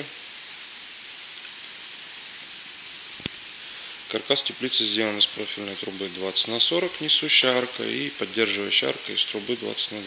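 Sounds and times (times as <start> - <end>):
rain on a plastic roof: 0.0 - 10.0.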